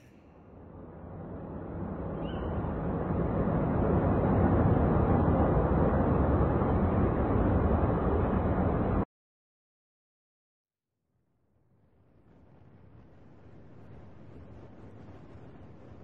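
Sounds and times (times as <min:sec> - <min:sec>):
dull rushing noise: 0:00.0 - 0:09.0.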